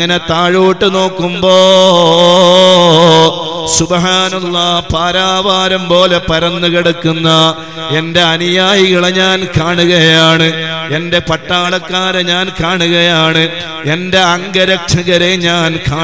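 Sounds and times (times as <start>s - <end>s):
man chanting into a microphone: 0.0s - 16.0s.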